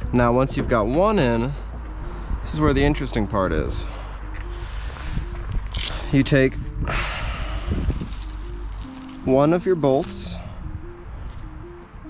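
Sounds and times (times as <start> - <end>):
low rumble: 0.0 - 9.3
plastic bag crinkling: 7.6 - 10.2.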